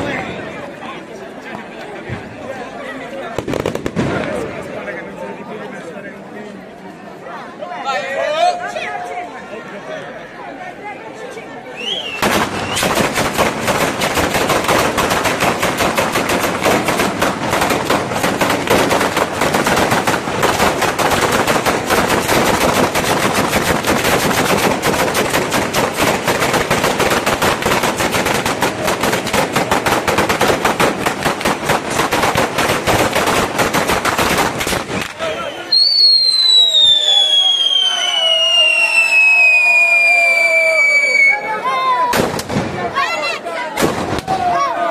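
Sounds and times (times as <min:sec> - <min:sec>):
firecrackers rattling: 0:03.3 - 0:04.6, 0:12.1 - 0:39.6.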